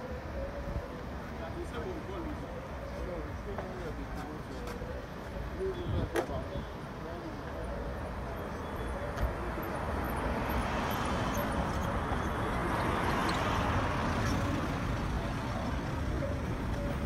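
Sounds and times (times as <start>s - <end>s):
street traffic: 0.0s - 17.0s
vehicle passing: 8.8s - 17.0s.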